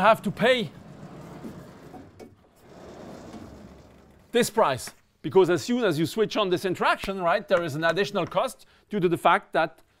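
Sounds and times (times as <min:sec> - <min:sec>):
chalkboard panels sliding: 0:00.0 - 0:04.9.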